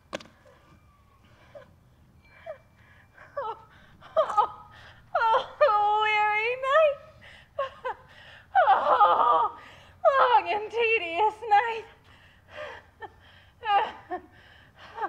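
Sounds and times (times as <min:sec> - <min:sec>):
woman whimpering and wailing: 0:00.8 - 0:11.9, 0:13.0 - 0:14.3.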